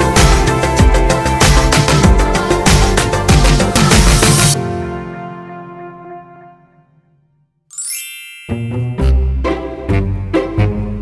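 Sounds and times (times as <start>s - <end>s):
background music with deep bass: 0.0s - 4.6s
shimmering chime with rising sweep: 7.7s - 9.4s.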